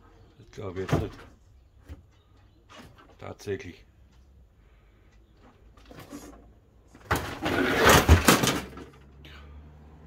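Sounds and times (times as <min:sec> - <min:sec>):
toy car scraping down wooden ramp: 0:07.0 - 0:09.0.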